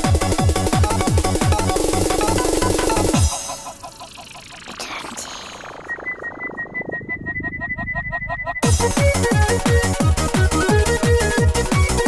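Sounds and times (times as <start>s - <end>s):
quick repeating ticks: 0.1s - 6.1s
filtered noise sweep: 3.5s - 8.7s.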